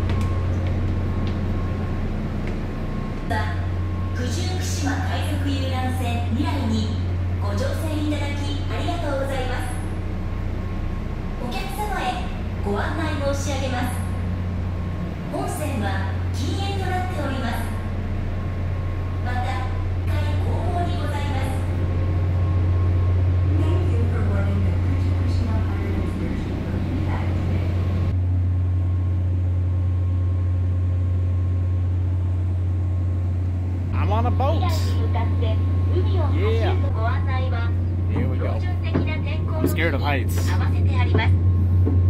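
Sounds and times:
low hum of boat machinery: 0:00.0 - 0:42.0
voices speaking: 0:33.9 - 0:41.4.

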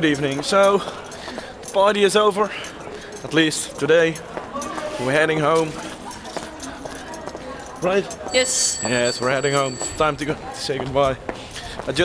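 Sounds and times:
footsteps on hard street: 0:00.0 - 0:12.0
street hum: 0:00.0 - 0:12.0.

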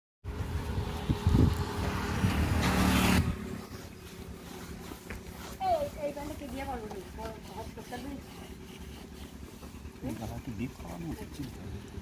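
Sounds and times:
motor running with low hum: 0:00.3 - 0:12.0.

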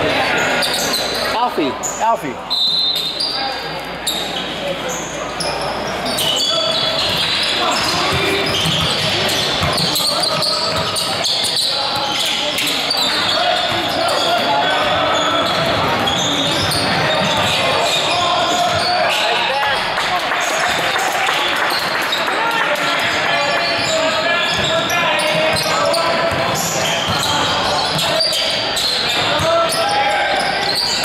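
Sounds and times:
echoing voices: 0:04.3 - 0:31.0.

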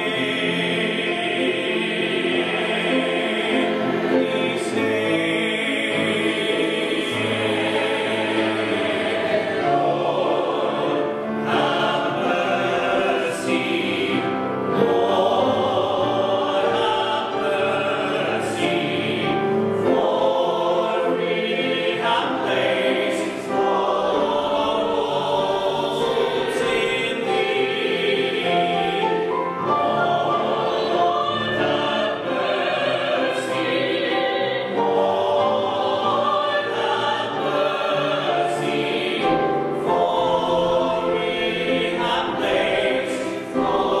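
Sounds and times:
choir singing in parts: 0:00.0 - 0:44.0.

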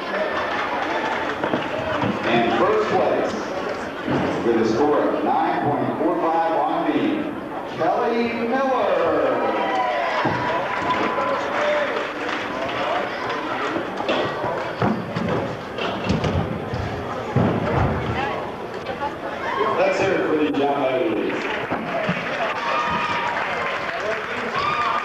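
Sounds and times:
echoing chatter of many voices: 0:00.0 - 0:25.0
dull thumps: 0:14.1 - 0:18.3.

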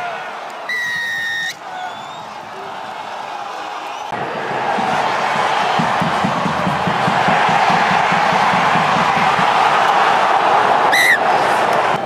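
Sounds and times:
stadium crowd voices: 0:00.0 - 0:12.0
referee's whistle blast: 0:00.7 - 0:02.2, 0:10.9 - 0:11.2.

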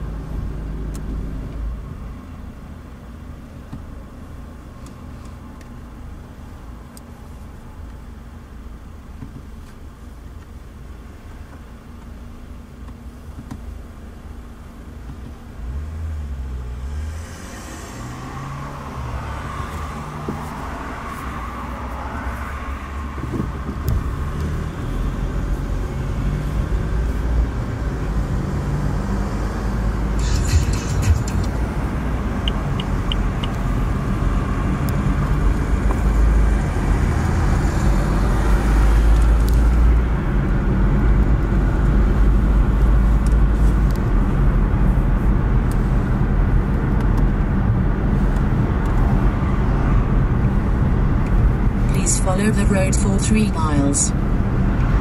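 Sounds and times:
car engine from inside cabin: 0:00.0 - 0:55.0
road noise: 0:00.0 - 0:55.0.

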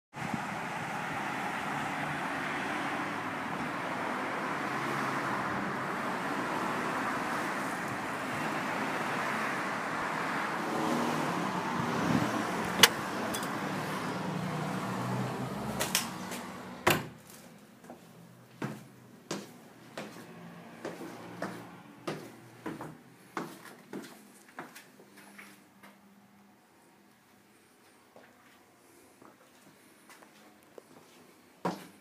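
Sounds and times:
street traffic noise: 0:00.2 - 0:32.0.

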